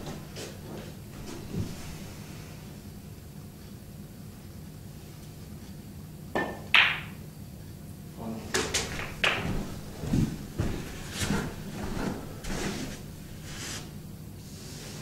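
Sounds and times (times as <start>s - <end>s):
soft footsteps: 0.0s - 2.2s, 8.6s - 14.2s
cue tip striking ball: 6.4s - 7.2s, 8.6s - 9.7s
snooker balls clacking: 6.4s - 7.2s, 8.5s - 10.0s.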